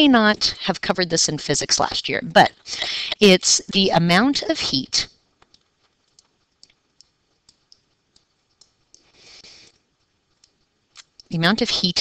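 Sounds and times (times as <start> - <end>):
soft hiss: 5.2 - 11.9
stylus tapping on tablet screen: 5.4 - 9.1.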